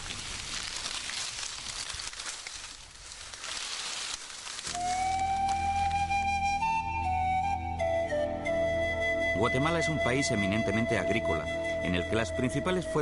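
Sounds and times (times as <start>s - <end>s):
dry stalks and leaves rustling: 0.0s - 7.6s
flute music over low drone: 4.7s - 13.0s.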